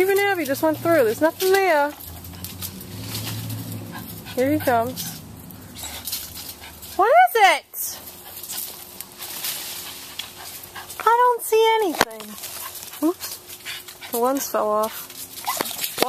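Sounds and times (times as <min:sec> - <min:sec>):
dog whining and yelping: 0:15.2 - 0:16.0.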